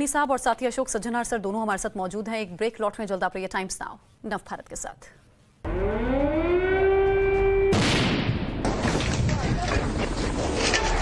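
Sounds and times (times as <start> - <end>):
air-raid siren winding up: 5.7 - 7.8.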